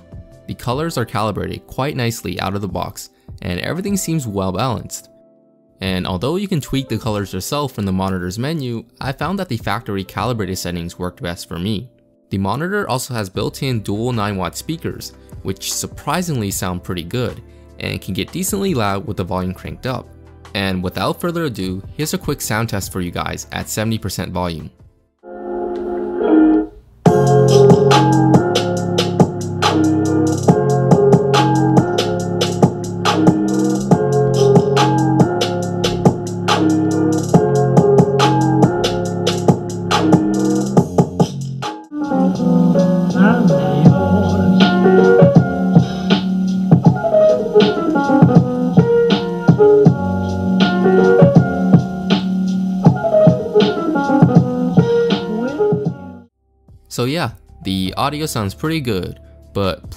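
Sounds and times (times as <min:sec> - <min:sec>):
beat-driven music track: 0:00.0 - 0:08.0, 0:24.5 - 0:59.9.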